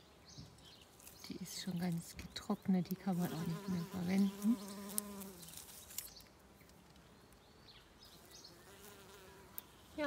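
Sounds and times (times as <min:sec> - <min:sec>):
bees buzzing: 0:03.0 - 0:05.6, 0:08.2 - 0:10.0.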